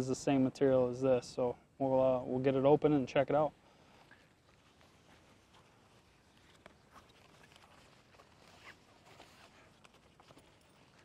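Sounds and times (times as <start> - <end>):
faint clicks and rustles: 3.8 - 11.0.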